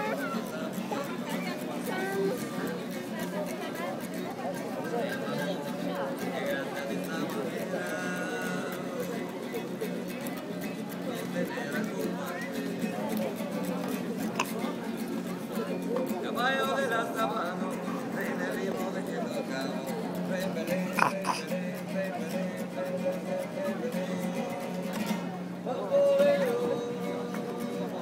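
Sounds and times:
diners talking: 0.0 - 28.0
tableware clinking: 21.0 - 21.4.

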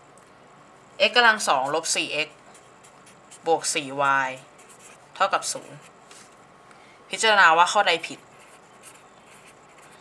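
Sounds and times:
pen scratching on paper: 1.6 - 3.6, 4.4 - 5.9, 8.1 - 10.0.

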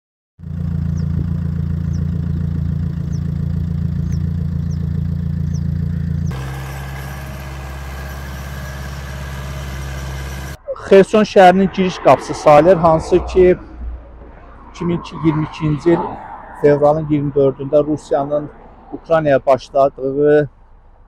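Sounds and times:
vehicle engine humming: 0.4 - 21.0.

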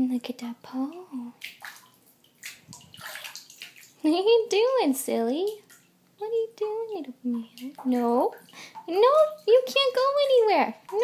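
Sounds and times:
bathwater sloshing: 0.0 - 11.0.

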